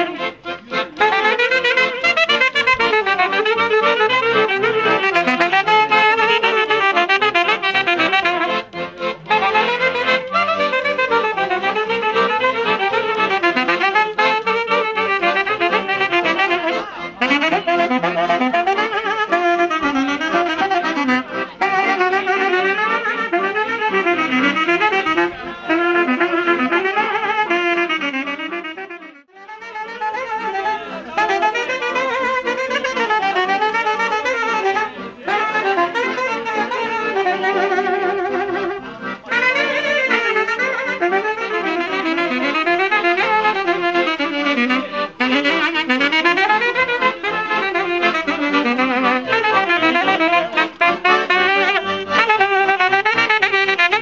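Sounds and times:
button accordion: 0.0 - 54.0
saxophones playing folk melody: 0.0 - 54.0.

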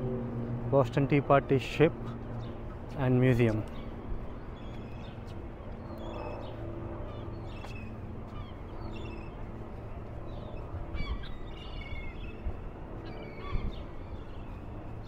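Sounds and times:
birds calling: 0.4 - 15.0.

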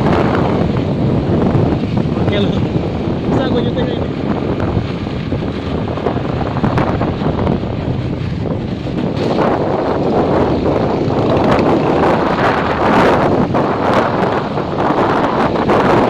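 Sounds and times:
motorcycle running: 0.0 - 16.0
wind rushing over microphone: 0.0 - 16.0.

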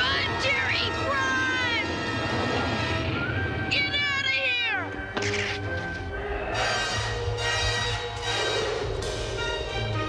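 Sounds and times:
dramatic orchestral music: 0.0 - 10.0.

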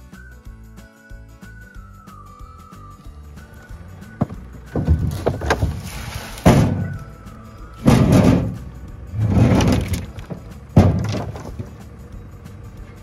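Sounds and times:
background music: 0.0 - 13.0
wooden boards thudding and scraping: 4.1 - 7.1, 7.8 - 11.9.

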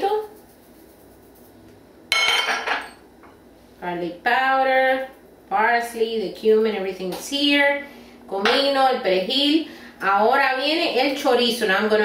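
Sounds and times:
clink on glass bowl: 2.1 - 3.0.

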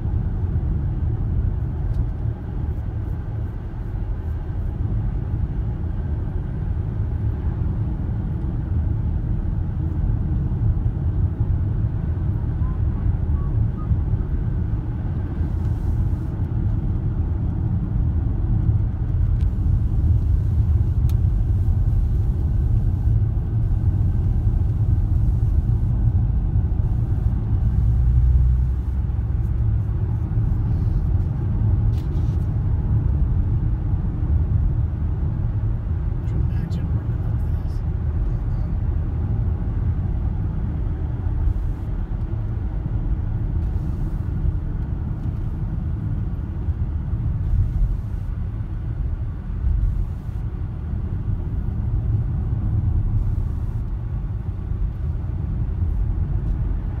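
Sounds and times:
car cabin road and engine rumble: 0.0 - 57.0.

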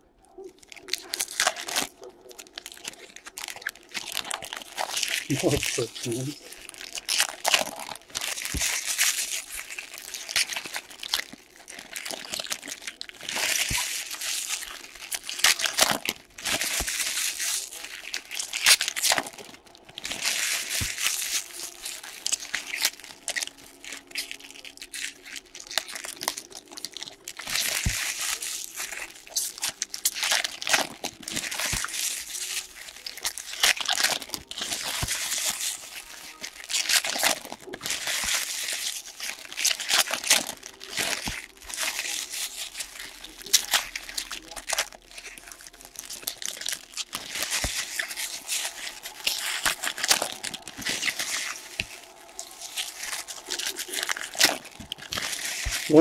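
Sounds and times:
foil wrappers crinkling: 0.0 - 56.0.

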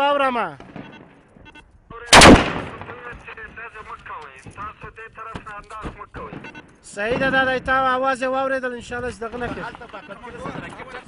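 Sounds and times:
loud gunshot with echo: 2.1 - 3.0.

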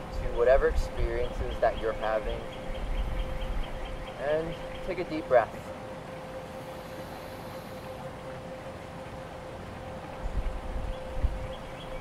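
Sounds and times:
faint steady hum: 0.0 - 12.0
low wind rumble on microphone: 0.0 - 12.0.

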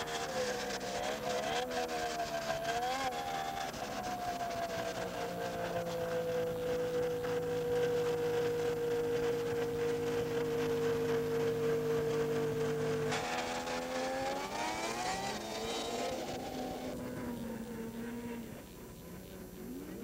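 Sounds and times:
snowmobile engine moving off: 0.0 - 20.0
snowmobile engine revving: 0.0 - 20.0.

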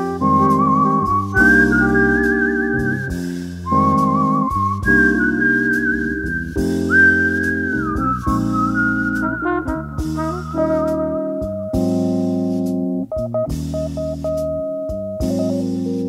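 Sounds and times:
bass: 0.0 - 16.0
jazz lead melody with vibrato: 0.0 - 16.0.

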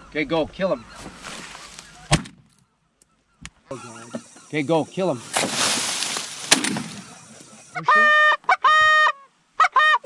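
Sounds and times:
rustling hiss: 3.8 - 7.8.

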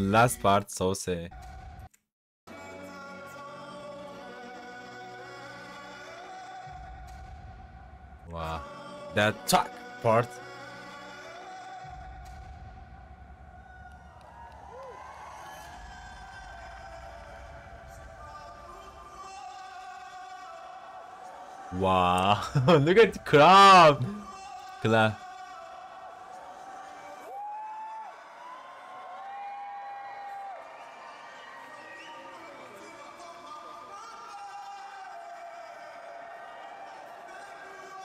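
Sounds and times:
faint man singing: 2.5 - 6.9, 8.3 - 12.2, 16.0 - 27.3
man singing long high notes: 8.3 - 11.8, 21.7 - 25.2
arena crowd cheering: 13.4 - 38.0.

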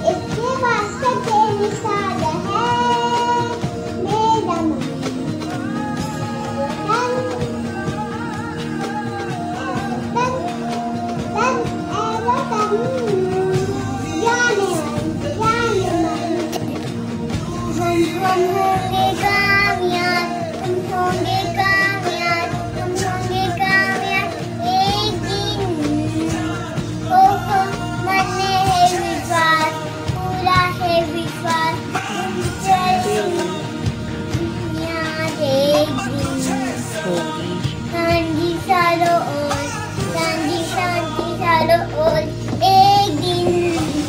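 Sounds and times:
child singing: 0.0 - 44.0
instrumental backing music: 0.0 - 44.0.

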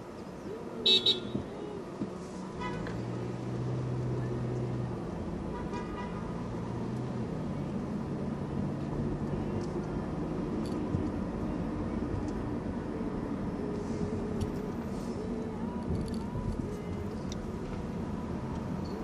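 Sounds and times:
car engine and road hum: 0.0 - 19.0.

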